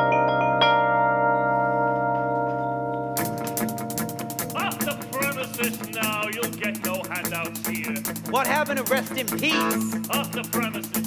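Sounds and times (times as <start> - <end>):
bell-like electronic keyboard notes: 0.0 - 5.3, 9.5 - 10.1.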